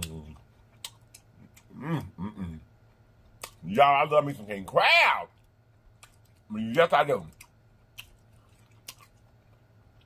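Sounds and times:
quiet chewing: 0.0 - 3.7, 5.3 - 10.0.

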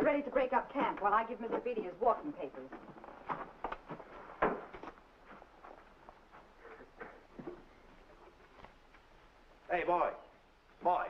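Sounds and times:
footsteps on a floor: 2.6 - 8.8.

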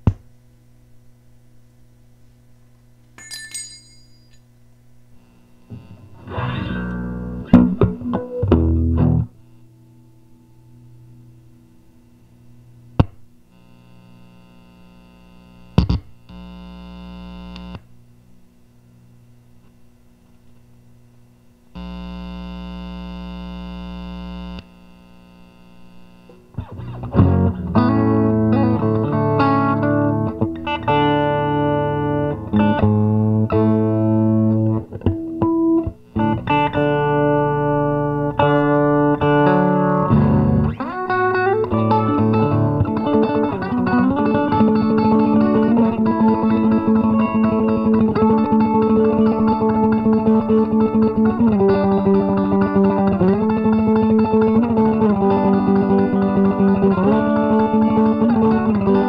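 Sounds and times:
electric guitar playing: 5.7 - 11.8, 26.3 - 59.0.

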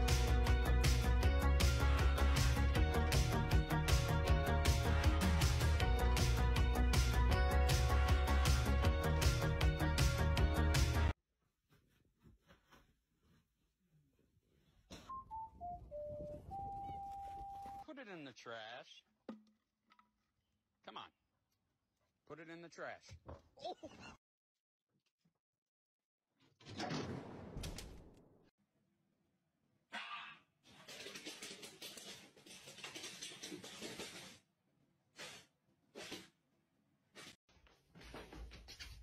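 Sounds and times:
dog claws scrabbling on wood floor: 30.7 - 34.4.

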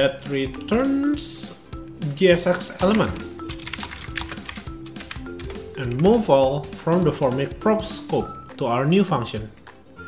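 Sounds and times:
background music: 0.0 - 10.0
computer keyboard typing: 2.6 - 6.1.

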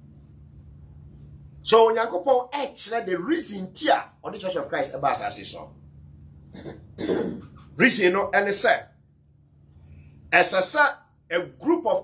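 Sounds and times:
low hum: 0.0 - 3.3, 4.0 - 10.3
person coughing: 6.5 - 7.7.

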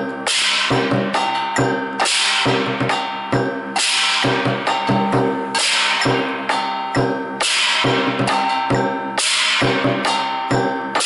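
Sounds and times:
drum beaten with sticks: 0.0 - 10.8
hand cymbals crashing: 0.0 - 11.0
hand gong ringing: 0.8 - 9.0.

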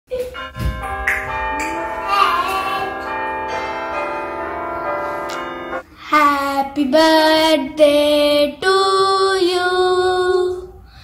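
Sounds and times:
bells ringing: 0.3 - 5.8.

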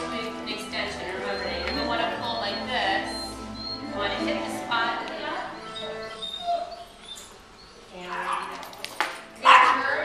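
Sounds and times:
dog whimpering: 1.0 - 8.6.

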